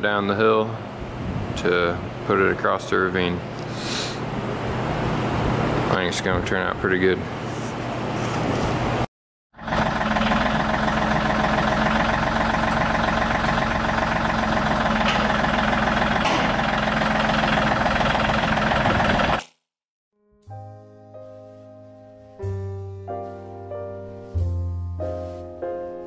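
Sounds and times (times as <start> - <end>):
tractor diesel engine running: 9.6 - 19.4
soft piano music: 20.2 - 26.0.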